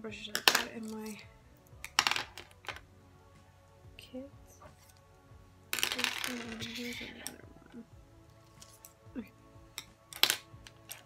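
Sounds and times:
makeup brushes rattling: 5.8 - 7.4.

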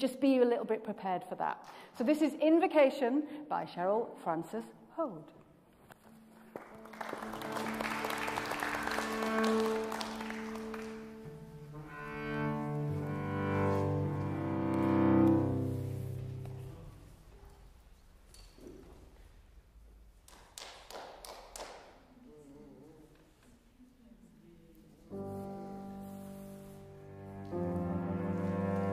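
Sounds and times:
piano: 6.2 - 17.0, 25.0 - 28.9
cello playing slowly: 6.7 - 17.2, 24.9 - 28.9.

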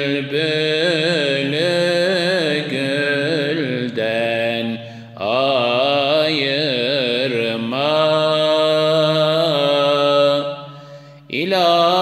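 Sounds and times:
man singing unaccompanied: 0.0 - 10.6, 11.3 - 12.0.

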